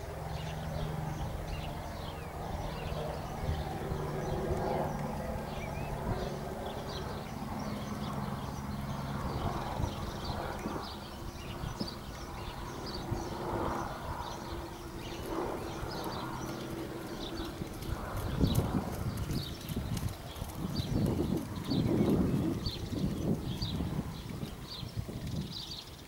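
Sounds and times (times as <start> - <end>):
horse hoofbeats on sand: 15.3 - 25.7.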